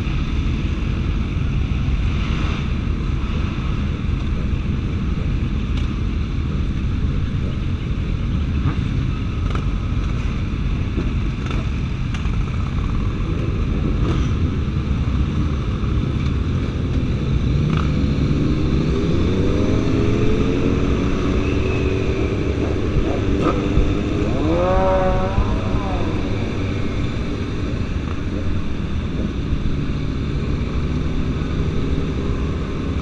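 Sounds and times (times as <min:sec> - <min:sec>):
motorcycle engines rumbling: 0:00.0 - 0:33.0.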